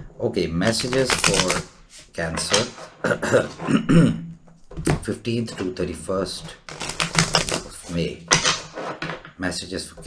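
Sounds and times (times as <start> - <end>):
man clearing his throat: 3.0 - 4.3
man coughing: 3.0 - 4.3.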